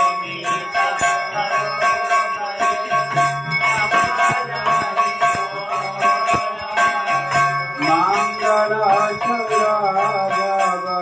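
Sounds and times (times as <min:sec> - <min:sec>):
temple bells ringing: 0:00.0 - 0:11.0.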